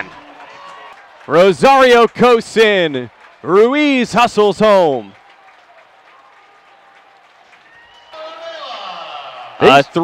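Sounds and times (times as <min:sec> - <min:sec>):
crowd cheering and clapping: 0:00.0 - 0:10.0.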